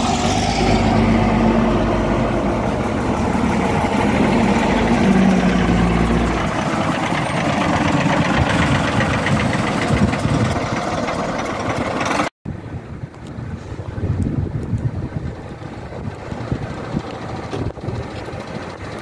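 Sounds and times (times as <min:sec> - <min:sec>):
bus diesel engine rumble: 0:00.0 - 0:19.0.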